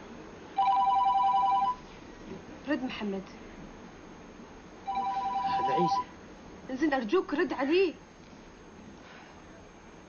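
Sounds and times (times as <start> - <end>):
mobile phone ringing: 0.6 - 1.8, 4.8 - 6.1.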